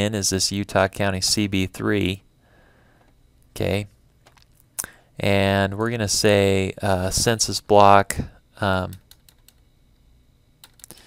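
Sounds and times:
faint keyboard keystrokes: 0:10.6 - 0:11.0.

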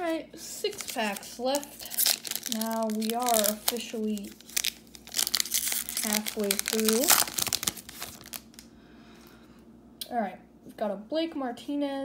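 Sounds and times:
plastic wrapper crinkling: 0:00.6 - 0:08.7.

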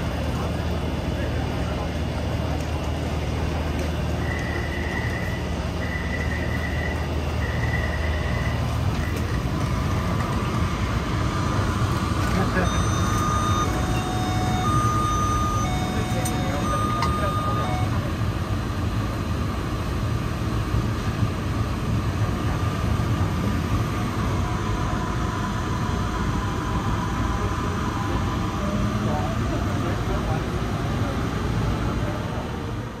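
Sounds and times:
passengers' voices: 0:00.0 - 0:33.0
train rumbling: 0:00.0 - 0:33.0
electronic door beeps: 0:12.4 - 0:18.1.

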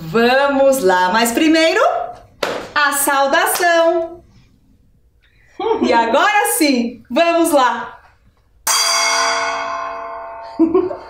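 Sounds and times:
gong ringing: 0:08.6 - 0:11.0.

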